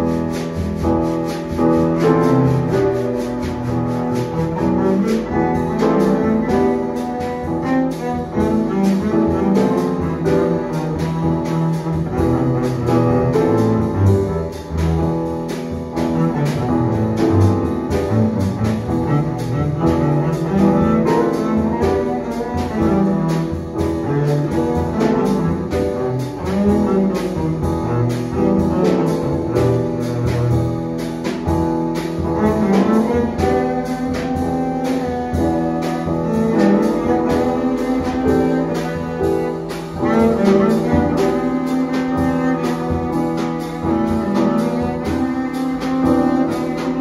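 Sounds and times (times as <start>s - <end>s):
bowed double bass: 0.0s - 47.0s
grand piano: 0.0s - 47.0s.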